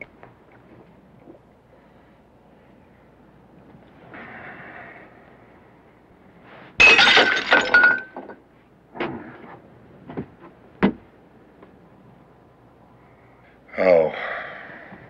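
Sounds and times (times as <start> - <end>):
loud crash of something breaking: 6.8 - 8.3.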